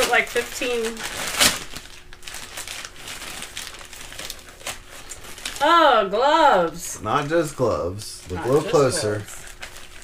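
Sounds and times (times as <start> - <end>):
wrapping paper crinkling and rustling: 0.0 - 6.8, 8.0 - 10.0.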